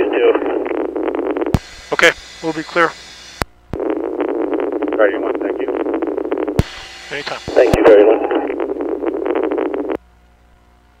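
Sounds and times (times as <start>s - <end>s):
faint steady hum: 0.0s - 11.0s
radio hiss with crackles: 0.0s - 11.0s
radio click: 0.6s - 10.0s.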